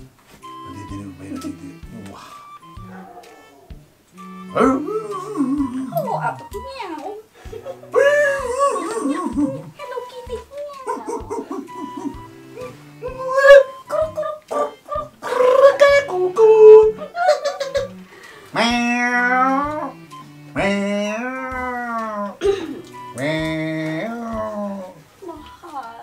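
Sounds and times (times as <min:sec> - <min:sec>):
man singing long ooh: 0:04.5 - 0:05.9
woman laughing high-pitched: 0:04.7 - 0:06.4, 0:07.4 - 0:18.0.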